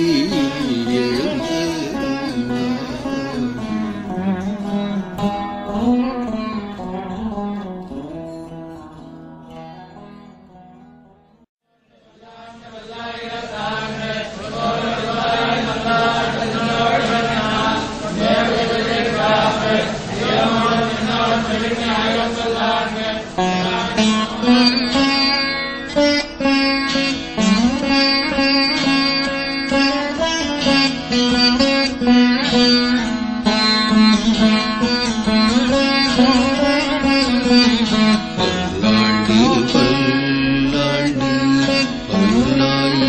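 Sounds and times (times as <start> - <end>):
plucked veena melody: 0.0 - 11.5, 14.8 - 43.0.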